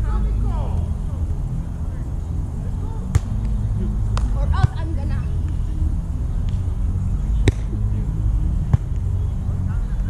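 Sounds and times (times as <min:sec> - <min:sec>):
low outdoor rumble: 0:00.0 - 0:10.0
volleyball slap: 0:03.1 - 0:04.9, 0:07.4 - 0:07.7.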